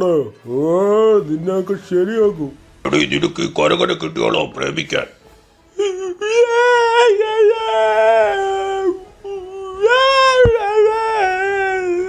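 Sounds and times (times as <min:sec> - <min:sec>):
cartoon voice wailing cry: 0:05.8 - 0:12.0.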